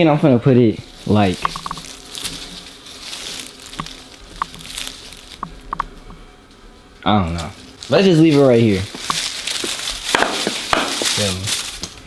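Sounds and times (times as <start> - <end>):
potted plant rustling: 0.8 - 12.0
sharp knocks and clicks: 5.4 - 6.2.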